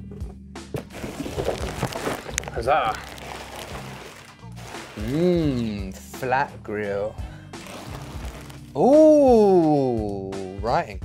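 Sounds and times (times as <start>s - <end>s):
background music with bass notes: 0.0s - 11.0s.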